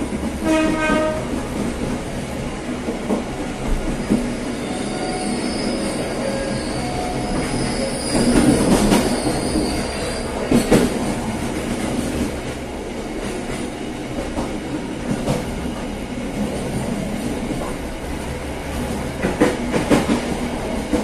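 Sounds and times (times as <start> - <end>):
train wheels on tracks: 0.0 - 21.0
high wheel squeal: 4.5 - 10.4.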